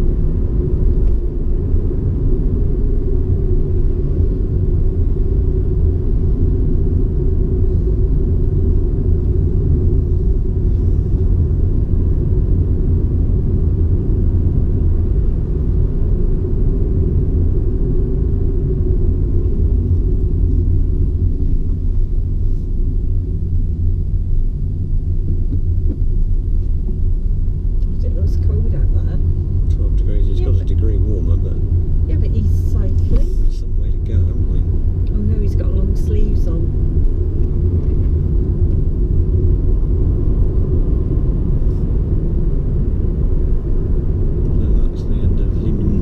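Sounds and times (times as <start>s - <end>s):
car driving heard from inside: 0.0s - 46.0s.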